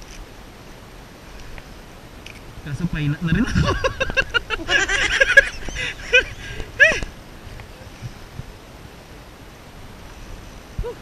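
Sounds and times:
man laughing loudly: 3.3s - 7.1s.

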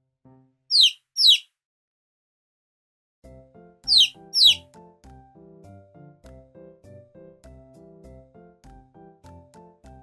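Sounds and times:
high chick peeps: 0.7s - 1.5s, 3.9s - 4.6s
instrumental children's music: 3.3s - 10.0s.

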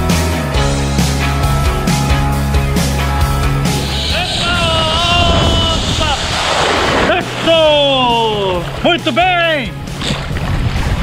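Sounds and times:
water spray splashing: 3.4s - 11.0s
man whooping and yelling: 4.0s - 6.3s, 7.4s - 9.6s.

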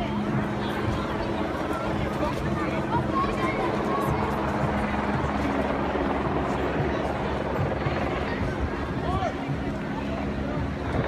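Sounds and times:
crowd voices: 0.0s - 11.0s
helicopter rotor: 0.0s - 11.0s.

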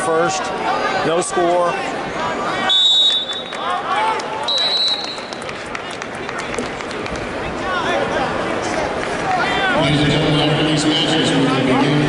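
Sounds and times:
crowd murmur: 0.0s - 12.0s
referee's whistle blasts: 2.6s - 3.6s, 4.4s - 5.3s.

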